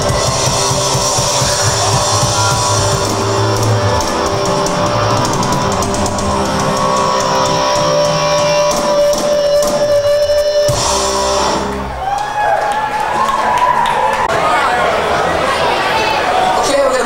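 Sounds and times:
drum kit: 0:00.0 - 0:12.4
electric guitars: 0:00.0 - 0:14.2.

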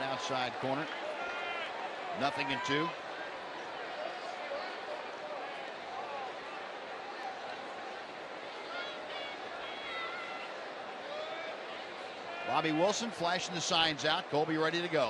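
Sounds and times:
crowd murmur: 0:00.0 - 0:15.0.

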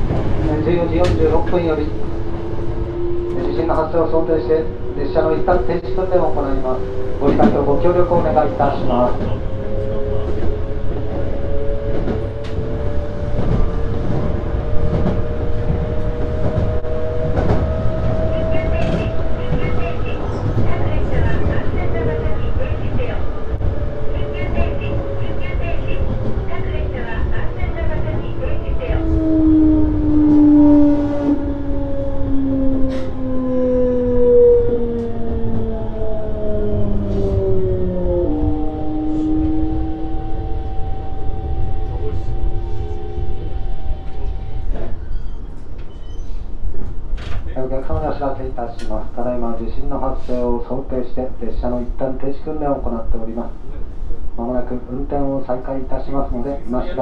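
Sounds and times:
train running rumble: 0:00.0 - 0:34.1
rail-joint clicks: 0:45.4 - 0:47.5, 0:48.7 - 0:49.0.

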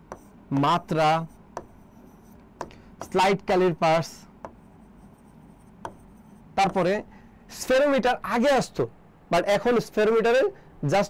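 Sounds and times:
marker tapping whiteboard: 0:00.0 - 0:00.3, 0:01.5 - 0:03.3, 0:04.4 - 0:07.0
marker writing on whiteboard: 0:00.0 - 0:07.1
man speaking: 0:00.5 - 0:01.3, 0:03.0 - 0:04.3, 0:06.6 - 0:11.0.

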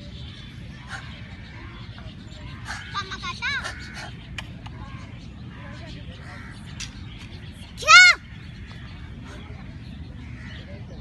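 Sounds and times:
faint outdoor background noise: 0:00.0 - 0:11.0
girl's karate shout: 0:07.8 - 0:08.2.

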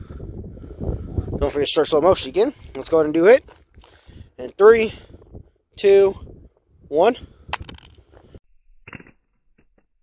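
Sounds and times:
flip phone hitting asphalt: 0:07.5 - 0:07.9.

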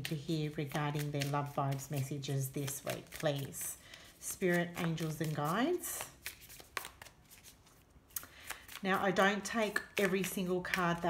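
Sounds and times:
cards being shuffled by hand: 0:00.0 - 0:11.0.

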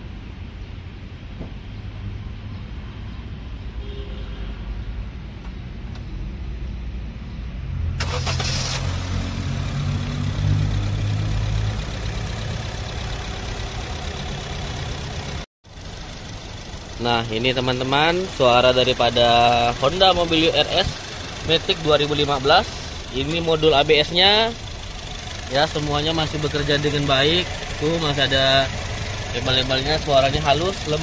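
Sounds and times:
car engine starting and idling: 0:07.9 - 0:31.0.

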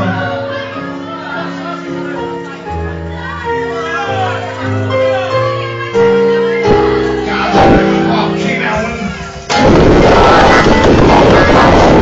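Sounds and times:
distorted live rock band: 0:06.6 - 0:12.0.

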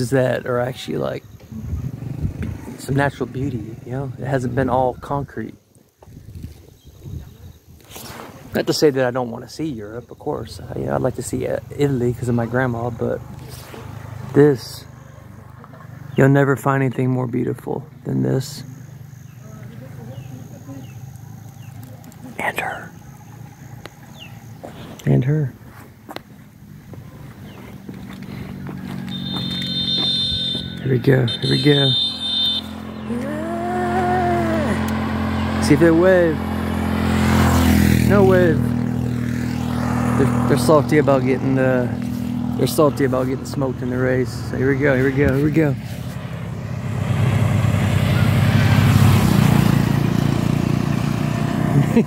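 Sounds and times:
wind rushing over microphone: 0:01.3 - 0:03.0, 0:06.0 - 0:08.5
motorbike engine running: 0:26.7 - 0:52.0.

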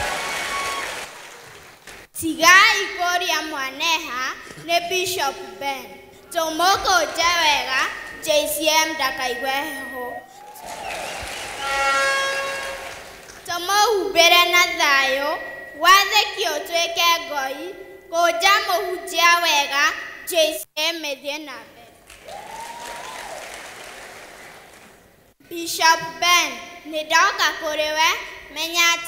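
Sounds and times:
congregation applauding: 0:00.0 - 0:02.1, 0:10.3 - 0:13.5, 0:22.0 - 0:25.1.

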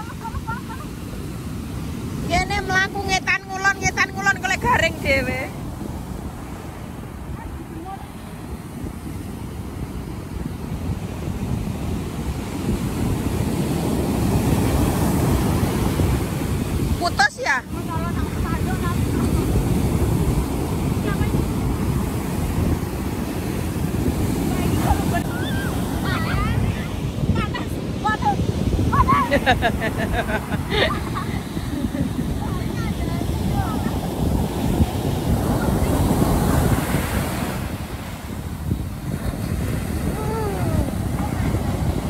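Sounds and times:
ocean surf breaking: 0:00.0 - 0:42.0
wind buffeting microphone: 0:00.0 - 0:42.0.

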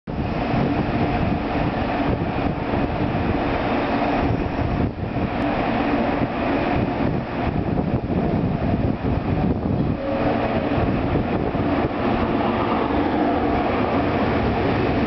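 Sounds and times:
electric train hum and rumble: 0:00.1 - 0:15.0.

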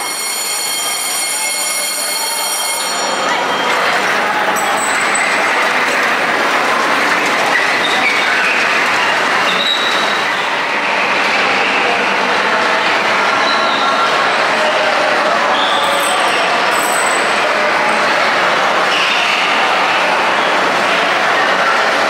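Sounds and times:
ride car rolling on rail: 0:00.0 - 0:22.0.

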